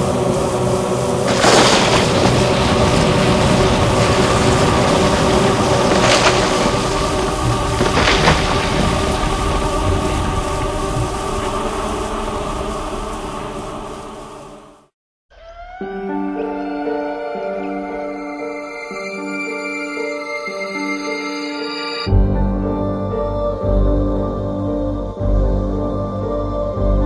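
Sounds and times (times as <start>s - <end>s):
heavy rain: 0.0s - 14.9s
thunder cracks: 0.0s - 14.9s.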